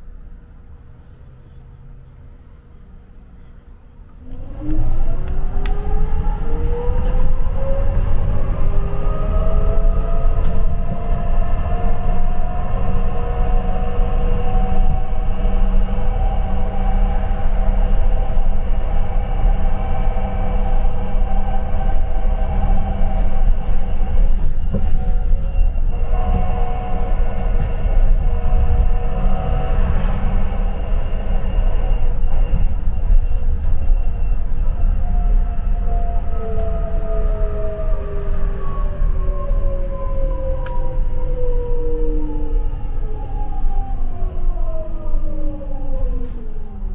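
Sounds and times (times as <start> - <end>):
bus road and engine rumble: 0.0 - 46.9
drivetrain whine: 4.1 - 44.4.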